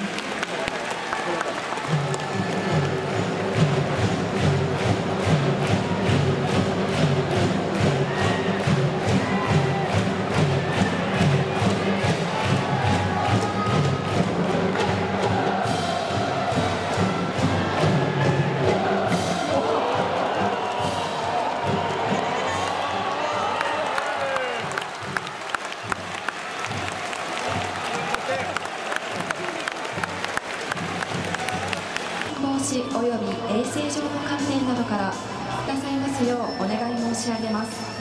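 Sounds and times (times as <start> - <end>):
crowd chanting and cheering: 0.0 - 36.7
driving drumbeat: 1.8 - 23.5, 24.4 - 32.3.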